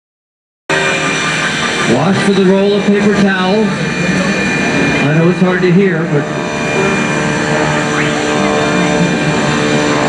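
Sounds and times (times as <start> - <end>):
biplane engine droning overhead: 0.7 - 10.0.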